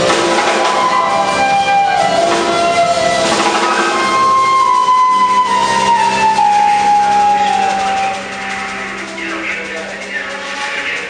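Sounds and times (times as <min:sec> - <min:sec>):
electric bass: 0:00.0 - 0:10.1
flute note bending down: 0:00.0 - 0:10.8.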